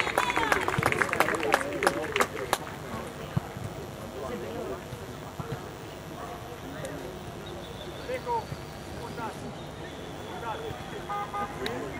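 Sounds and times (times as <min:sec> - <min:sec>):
indistinct chatter: 0:00.0 - 0:11.9.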